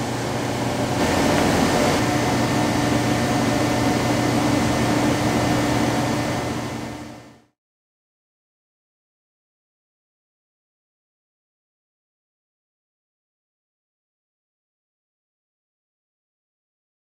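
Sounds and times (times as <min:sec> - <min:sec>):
waterjet cutter hissing: 0:00.0 - 0:07.1.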